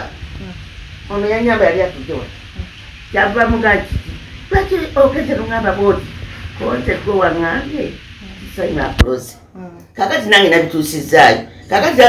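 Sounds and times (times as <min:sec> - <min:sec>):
crackly background noise: 0:00.0 - 0:12.0
elderly woman speaking: 0:00.4 - 0:12.0.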